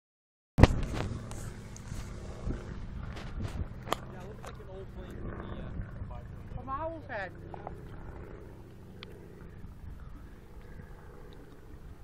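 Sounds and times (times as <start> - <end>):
wind rumble on microphone: 0.6 - 12.0.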